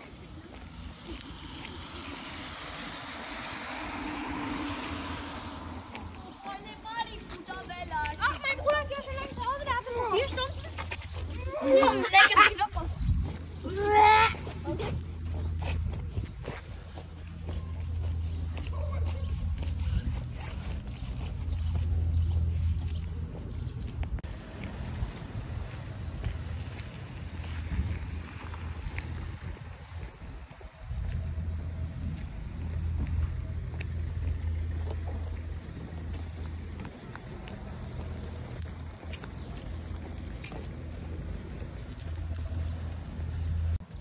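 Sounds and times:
steady low rumble: 0.0 - 11.6
wind rumbling on microphone: 0.0 - 12.0, 12.7 - 44.0
high-pitched vocal cry: 13.6 - 15.0.

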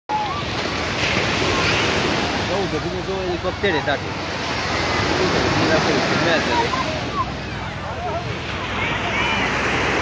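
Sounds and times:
faint voices: 0.1 - 10.0
waves washing up a beach: 0.1 - 10.0.

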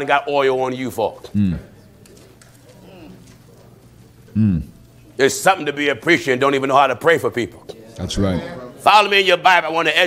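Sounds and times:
low hummed murmurs: 1.1 - 8.9.

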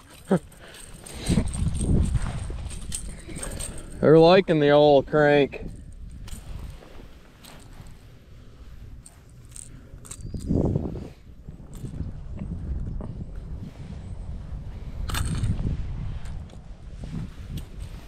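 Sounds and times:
handling rustles: 0.0 - 12.0
wind on microphone: 0.9 - 18.0.

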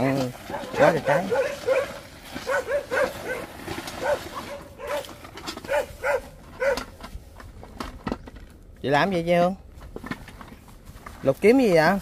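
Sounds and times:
dogs barking: 0.0 - 7.0.

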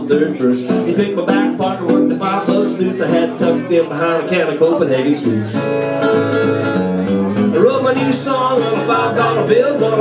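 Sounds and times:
person singing: 0.0 - 5.4, 7.5 - 10.0
acoustic guitar strumming: 0.0 - 10.0.

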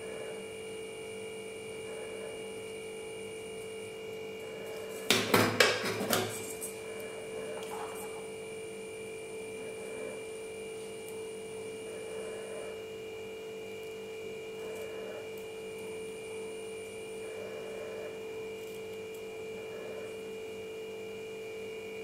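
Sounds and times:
electrical hum with whine: 0.0 - 22.0.

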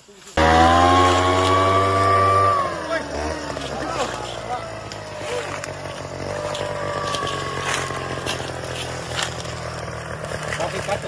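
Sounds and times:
leaf blower engine running: 0.0 - 11.0
leaf litter crackling and scraping: 0.0 - 11.0.

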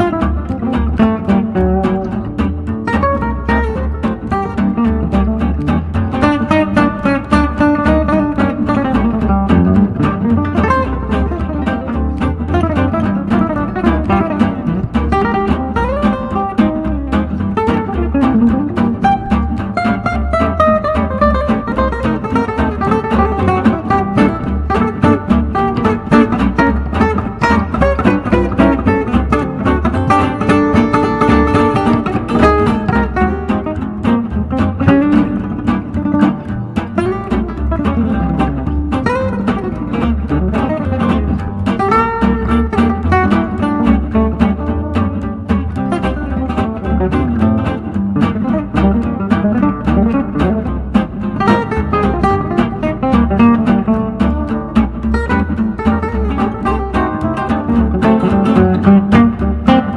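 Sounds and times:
acoustic guitar jazz solo: 0.0 - 59.9.

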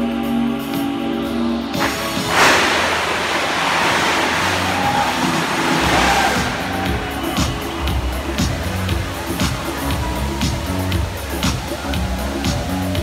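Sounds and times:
music over loudspeakers: 0.0 - 13.0
fountain water jets rushing: 1.8 - 13.0
water spray hissing and splashing: 1.8 - 13.0.

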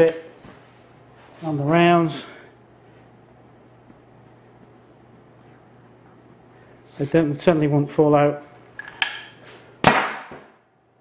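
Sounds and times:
loud sharp air pop: 9.8 - 10.6.

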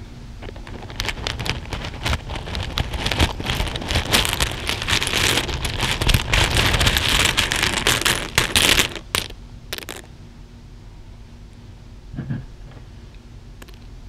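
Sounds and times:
plastic buttons and beads rattling: 0.5 - 10.1.

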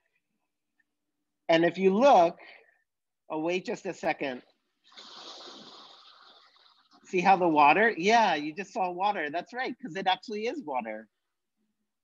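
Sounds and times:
water wave rushing: 4.8 - 7.6.

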